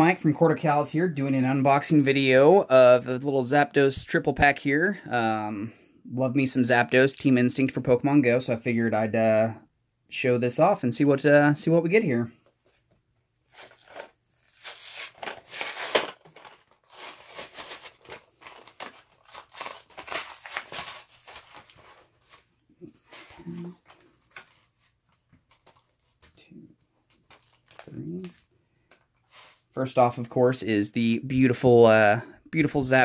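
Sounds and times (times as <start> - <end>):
plastic packaging crinkling: 13.4 - 26.3, 27.1 - 28.5.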